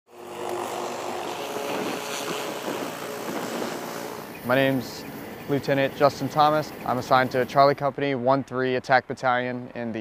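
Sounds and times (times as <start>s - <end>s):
helicopter engines and rotors: 0.1s - 9.7s.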